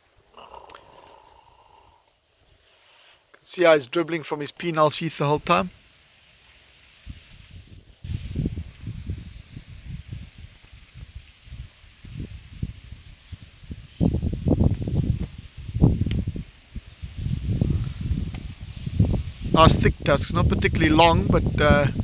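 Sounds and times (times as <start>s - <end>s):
faint rustle and hiss: 0.0s - 21.6s
wind buffeting microphone: 7.0s - 22.0s.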